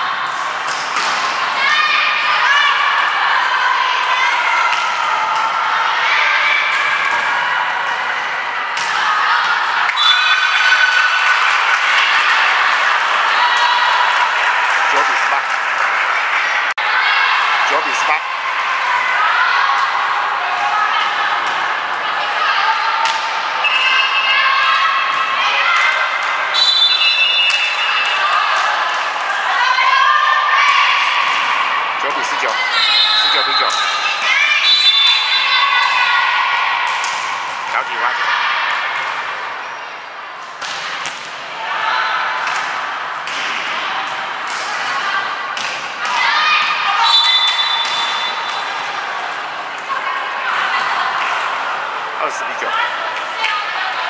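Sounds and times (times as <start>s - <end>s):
players and spectators shouting: 0.0s - 40.0s, 40.9s - 54.0s
volleyball hits: 0.3s - 1.6s, 8.7s - 11.2s, 30.6s - 36.2s, 42.2s - 51.8s.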